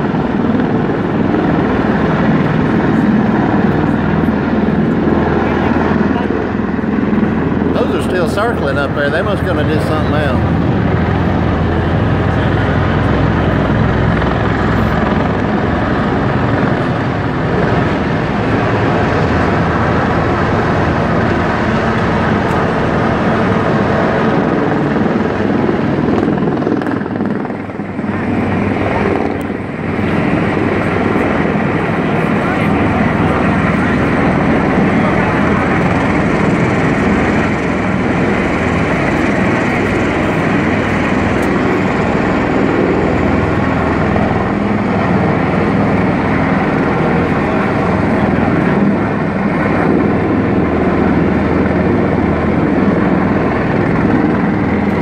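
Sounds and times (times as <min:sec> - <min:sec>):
tiltrotor aircraft flying overhead: 0:00.0 - 0:55.0.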